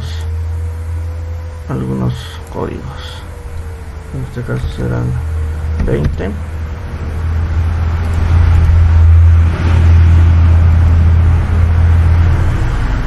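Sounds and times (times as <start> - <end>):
loud low rumble: 0.0 - 13.0.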